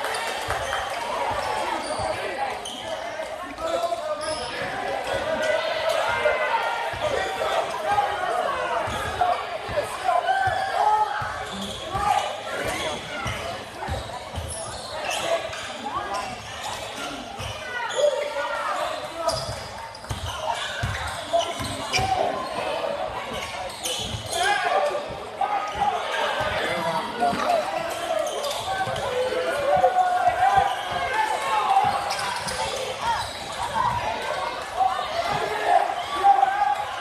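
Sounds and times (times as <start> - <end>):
spectators talking: 0.0 - 37.0.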